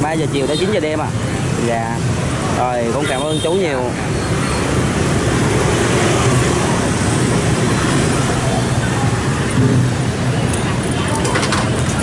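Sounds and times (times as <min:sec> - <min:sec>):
motorbikes passing: 0:00.0 - 0:12.0.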